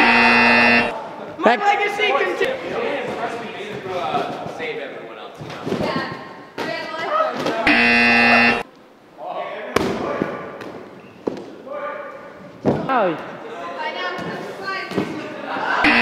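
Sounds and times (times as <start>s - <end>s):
loud buzzer tone: 0.0s - 0.9s, 7.7s - 8.6s
voices: 0.0s - 10.6s, 11.6s - 16.0s.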